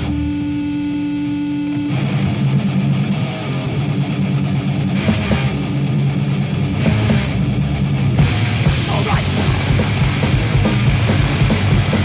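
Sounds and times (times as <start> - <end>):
distorted electric guitar note: 0.0 - 12.0
heavy metal band playing: 0.0 - 12.0.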